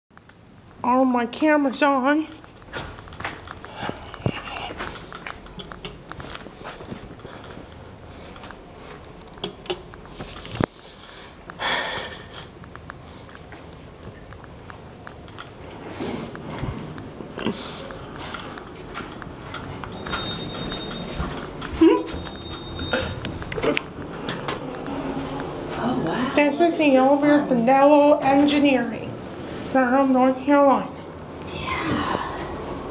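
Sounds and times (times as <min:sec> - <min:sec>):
high electronic beep: 0:19.9 - 0:21.2, 0:21.9 - 0:23.3.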